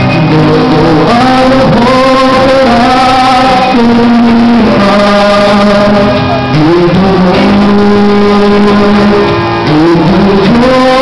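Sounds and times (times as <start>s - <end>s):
man singing through microphone: 0.0s - 11.0s.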